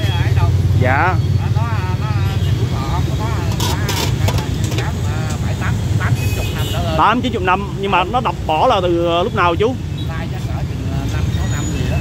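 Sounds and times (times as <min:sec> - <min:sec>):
street traffic rumble: 0:00.0 - 0:12.0
voices talking: 0:00.0 - 0:12.0.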